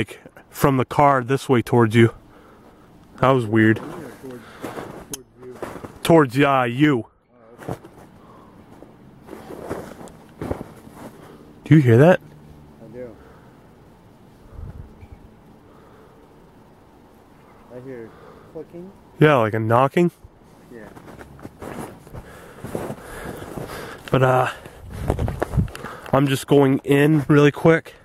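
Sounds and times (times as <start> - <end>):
footsteps in snow: 3.6 - 6.0, 7.5 - 11.5, 20.5 - 24.0.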